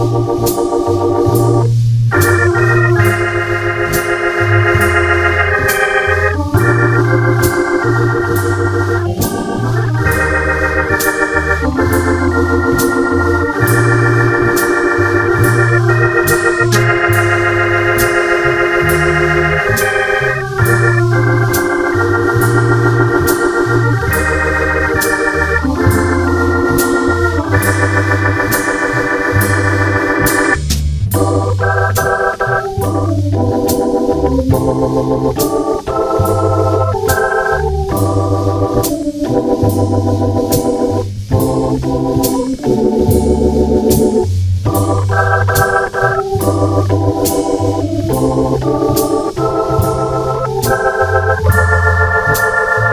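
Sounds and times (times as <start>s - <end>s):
light cymbal beat: 0.0s - 33.0s, 33.7s - 52.9s
bass line: 0.0s - 52.9s
organ playing jazz ballad: 0.0s - 52.9s.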